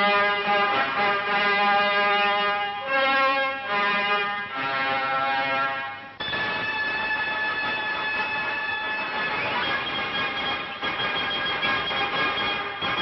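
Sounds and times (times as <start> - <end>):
brass music: 0.0 - 13.0
old film soundtrack noise: 6.1 - 13.0.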